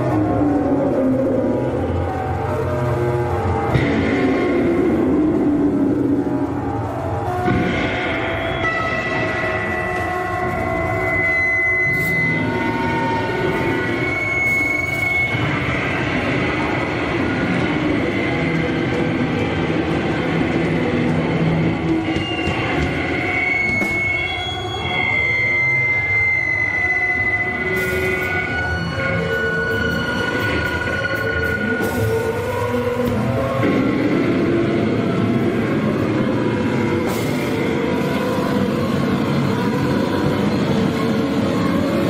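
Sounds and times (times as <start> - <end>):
amplified feedback noise: 0.0 - 42.0
high whistling feedback squeals: 7.2 - 19.0, 21.6 - 34.2.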